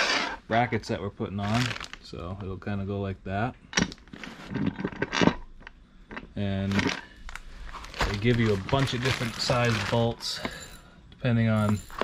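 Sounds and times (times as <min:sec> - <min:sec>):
plastic bag crinkling: 0:01.4 - 0:02.1, 0:06.6 - 0:10.7.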